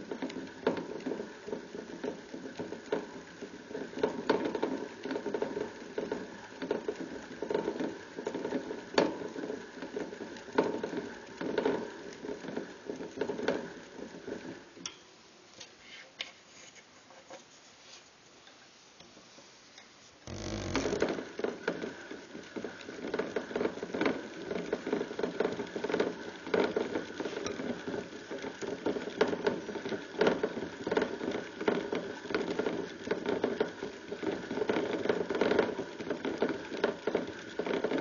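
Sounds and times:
exercise wheel clicking and rattling: 0.0 - 14.6, 20.3 - 38.0.

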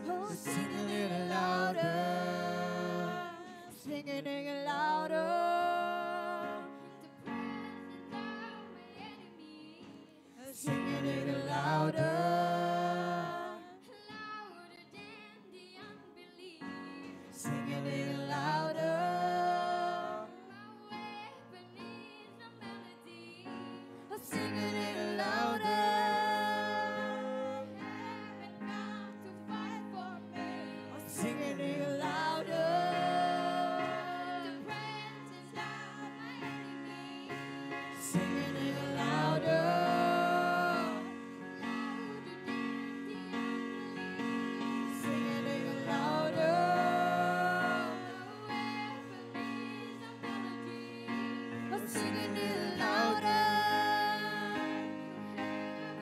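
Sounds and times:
singing: 0.0 - 56.0.

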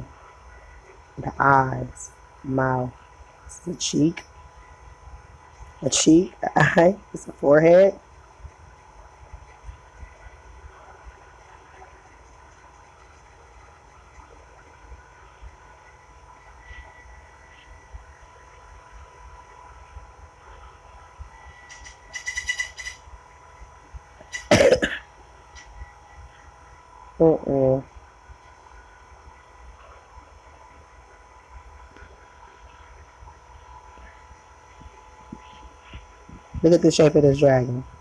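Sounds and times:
faint steady hum: 0.0 - 38.0
rapid trill of clicks: 21.7 - 23.0
person coughing: 24.5 - 25.0.

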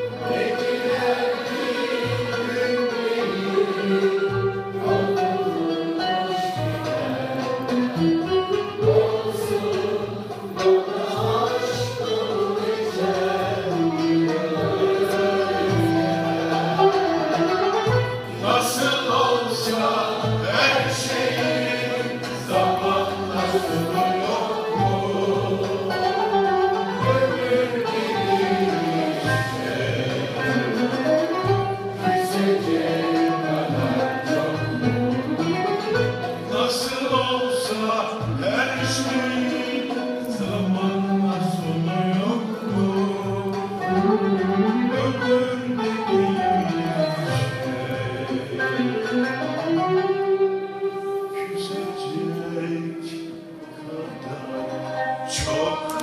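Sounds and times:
choir singing: 0.0 - 50.2
bowed and plucked strings: 0.0 - 56.0
classical music ensemble playing: 0.0 - 56.0.

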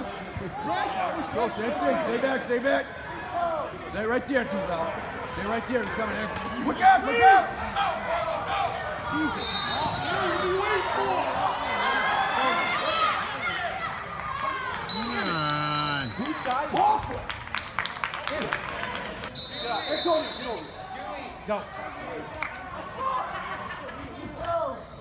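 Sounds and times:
referee's whistle: 9.2 - 10.3, 14.9 - 16.4, 19.3 - 21.0.

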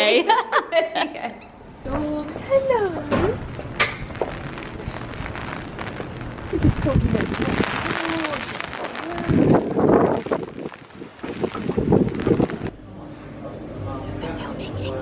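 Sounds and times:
wind buffeting microphone: 1.9 - 12.8.

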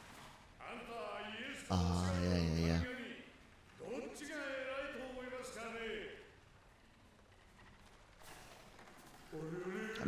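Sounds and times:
person speaking: 1.6 - 2.9
person humming: 1.7 - 2.8.

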